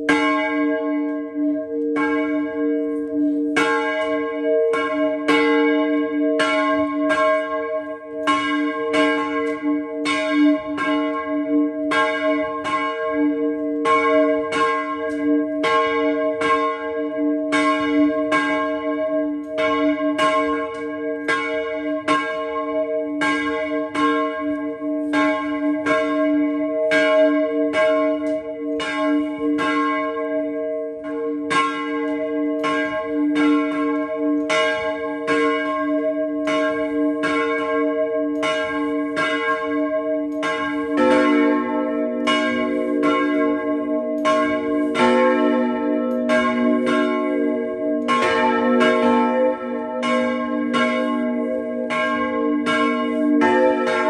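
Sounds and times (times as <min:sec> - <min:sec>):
church bell ringing: 0:00.0 - 0:54.0.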